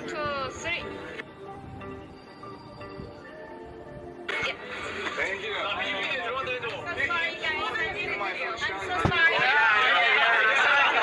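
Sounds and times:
background music sustained notes: 0.0s - 11.0s
crowd chatting: 2.8s - 11.0s.

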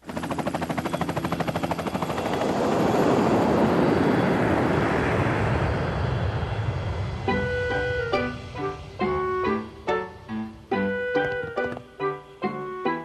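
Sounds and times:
helicopter rotor chopping: 0.0s - 12.0s
jet airliner rush: 1.8s - 11.8s.

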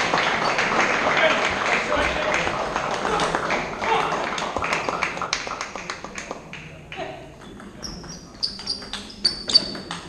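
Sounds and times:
murmur in a sports hall: 0.0s - 10.0s
table tennis balls clicking: 7.4s - 10.0s.

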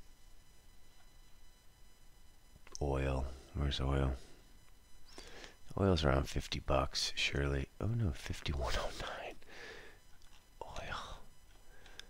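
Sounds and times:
man whispering: 5.7s - 9.5s, 10.6s - 11.3s.

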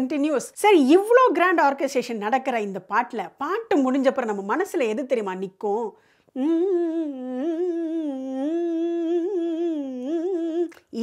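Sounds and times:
woman humming: 6.4s - 11.0s.

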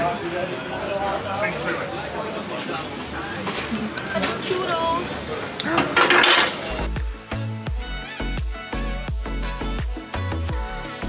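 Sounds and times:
street market ambience: 0.0s - 8.3s
music with heavy bass beat: 6.8s - 11.0s.

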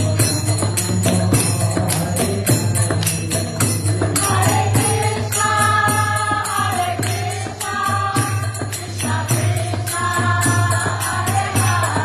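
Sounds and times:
man singing a mantra: 0.0s - 4.8s
small hand cymbals: 0.0s - 12.0s
two-headed drum playing: 0.0s - 12.0s.

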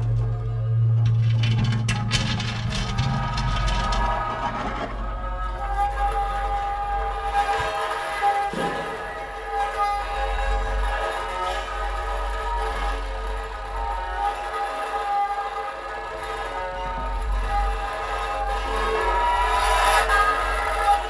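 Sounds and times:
deep electronic drone: 0.0s - 21.0s.

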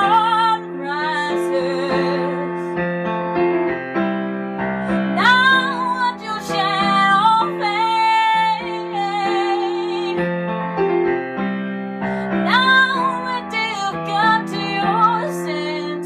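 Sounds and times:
woman singing: 0.0s - 2.8s, 4.9s - 10.3s, 12.2s - 16.0s
piano chords: 0.0s - 16.0s.

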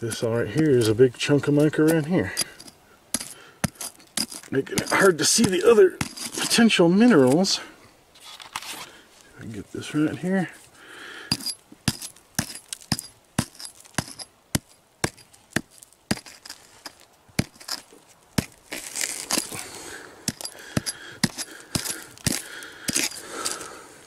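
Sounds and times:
rock fragments rattling: 0.0s - 6.8s, 11.3s - 19.7s, 20.3s - 23.7s
rock hammer striking rock: 1.6s - 6.5s, 11.2s - 17.8s, 18.4s - 18.6s, 20.3s - 23.6s.

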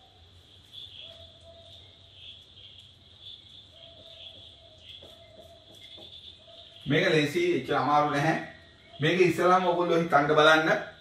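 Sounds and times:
insects chirring: 0.0s - 11.0s.

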